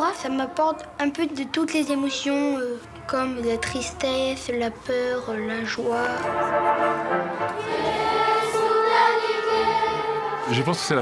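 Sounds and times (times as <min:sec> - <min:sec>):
children's choir singing: 0:05.8 - 0:11.0.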